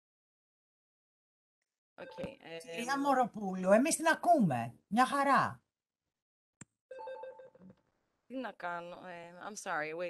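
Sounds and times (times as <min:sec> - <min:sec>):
faint electronic ringing tone: 0:06.9 - 0:07.6.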